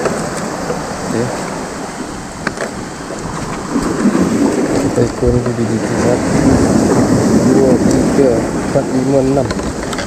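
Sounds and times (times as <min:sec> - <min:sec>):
sea surf on rocky shore: 0:00.0 - 0:10.0.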